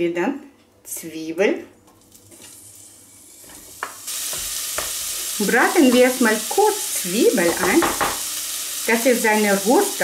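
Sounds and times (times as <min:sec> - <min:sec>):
onion sizzling in butter: 0:02.1 - 0:10.0
wooden spatula knocking bowl: 0:07.5 - 0:08.2.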